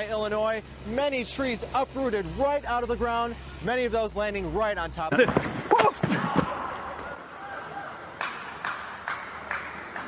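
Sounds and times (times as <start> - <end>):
rhythmic clapping: 8.2 - 10.0.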